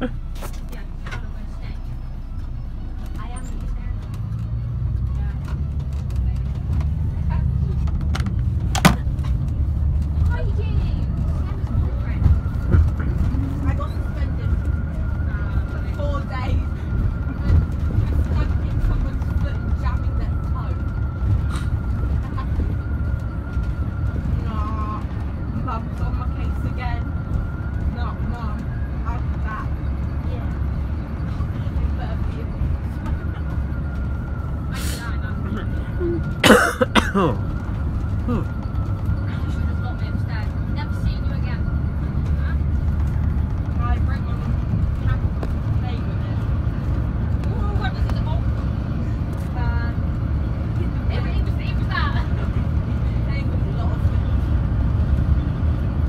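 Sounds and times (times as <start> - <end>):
coach engine and road rumble: 0.0 - 56.0.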